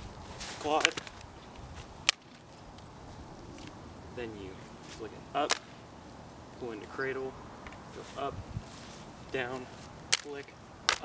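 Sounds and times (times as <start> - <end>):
hand slapping rifle: 10.1 - 11.0.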